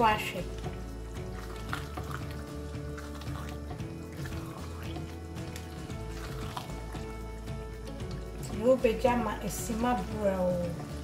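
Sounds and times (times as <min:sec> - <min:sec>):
music with held notes and bass: 0:00.0 - 0:11.0
stew sloshing while stirred: 0:00.1 - 0:10.2.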